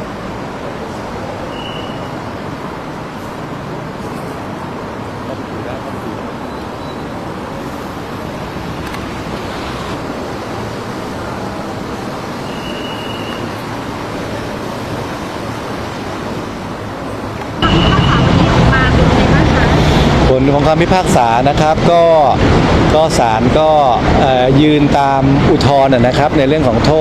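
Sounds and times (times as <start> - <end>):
street traffic: 0.0 - 27.0
brief high tone: 17.6 - 19.9.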